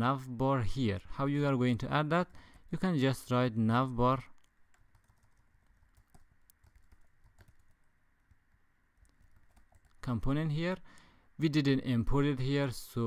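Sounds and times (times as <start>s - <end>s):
faint steady hiss: 0.0s - 13.0s
computer keyboard keystrokes: 4.4s - 7.8s, 9.0s - 10.0s.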